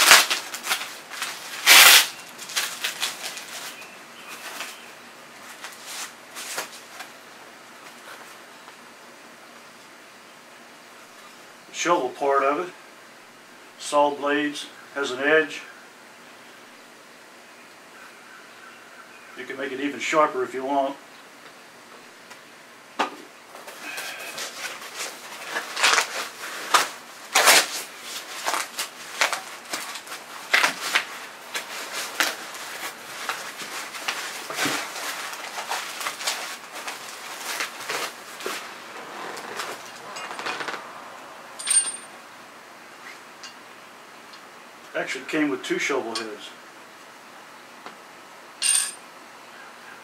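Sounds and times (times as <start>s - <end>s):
packing paper rustling: 0.0s - 7.2s, 23.5s - 41.0s.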